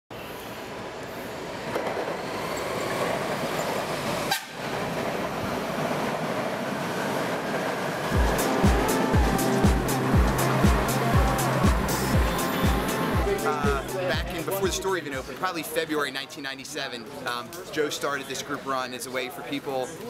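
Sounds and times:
train wheels rumbling on rails: 0.8 - 13.2
music with steady beat: 8.2 - 15.3.

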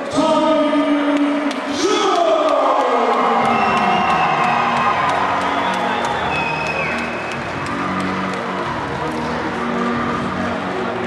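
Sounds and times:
background music: 0.0 - 11.0
crowd cheering: 1.8 - 11.0.

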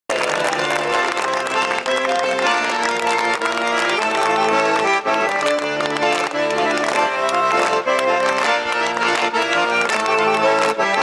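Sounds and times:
button accordion folk tune: 0.1 - 11.0.

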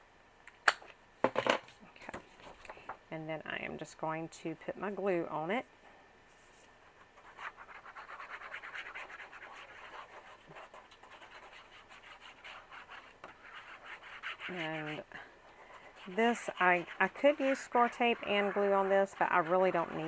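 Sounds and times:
glue bottle tip scratching paper: 15.9 - 20.0.

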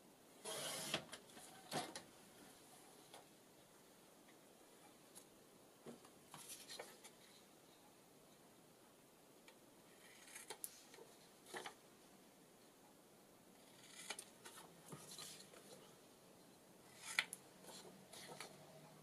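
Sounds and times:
paper rustling: 6.3 - 7.4.

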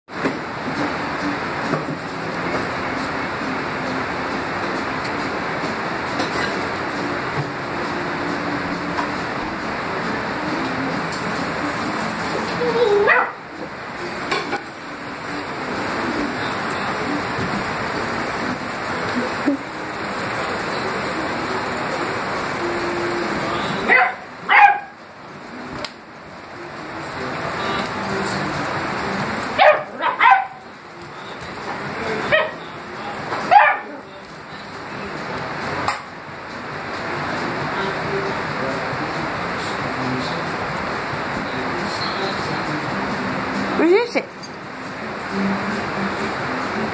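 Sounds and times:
steady background hiss: 0.1 - 46.9
dog barking: 12.8 - 13.4, 23.8 - 25.0, 29.6 - 30.6, 32.2 - 32.6, 33.4 - 34.0.

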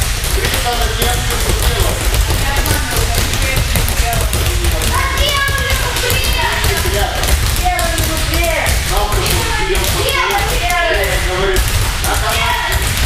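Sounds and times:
balls bouncing on padded mats: 0.0 - 13.0.

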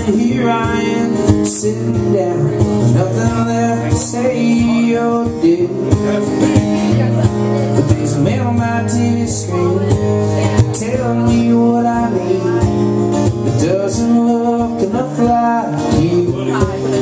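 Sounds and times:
acoustic guitar strumming: 0.0 - 17.0
man singing: 0.0 - 17.0.

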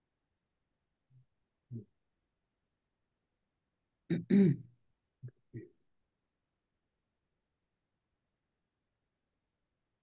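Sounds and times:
person clearing throat: 4.1 - 4.7.

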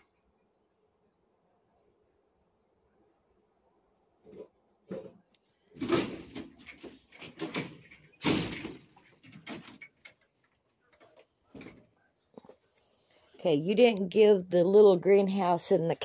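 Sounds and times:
door sliding and rattling: 5.8 - 10.0.

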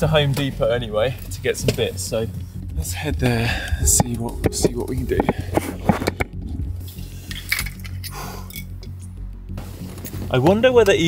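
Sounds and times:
low steady hum: 2.4 - 8.0.

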